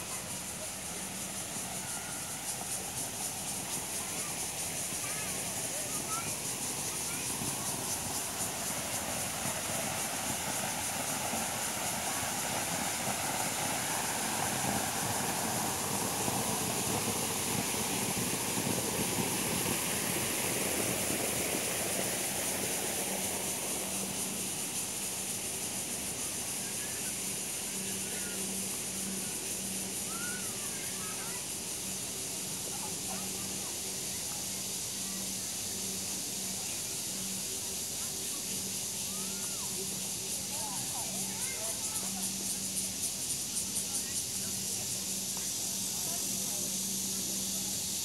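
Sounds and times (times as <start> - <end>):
constant high hiss: 0.0 - 48.0
outdoor park ambience: 0.0 - 48.0.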